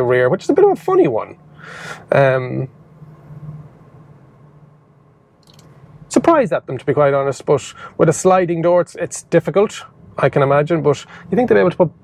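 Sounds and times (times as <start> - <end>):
van cabin low hum: 0.0 - 12.0.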